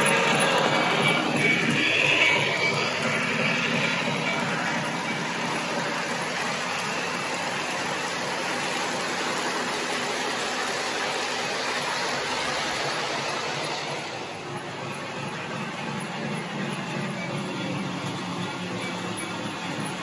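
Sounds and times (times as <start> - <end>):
model train wheels rattling on track: 0.0 - 20.0.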